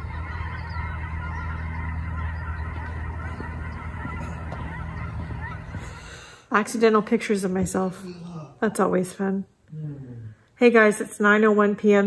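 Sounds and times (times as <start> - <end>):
geese calling: 0.0 - 9.3.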